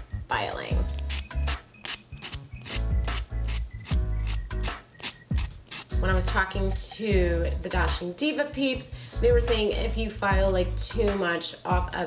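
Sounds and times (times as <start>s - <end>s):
background music: 0.0s - 12.0s
nail buffer rubbing: 0.8s - 7.0s.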